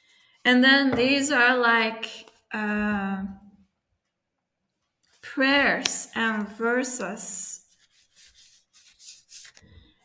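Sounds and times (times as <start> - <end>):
paper cards sliding and rubbing: 7.6 - 10.0.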